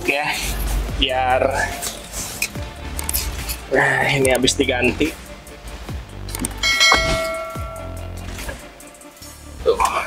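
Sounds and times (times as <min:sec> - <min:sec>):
background music: 0:00.0 - 0:10.0
bell-like chime: 0:06.6 - 0:08.2.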